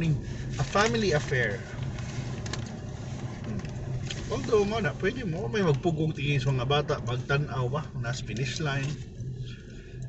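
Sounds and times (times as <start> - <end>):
car engine and road hum: 0.0 - 10.0.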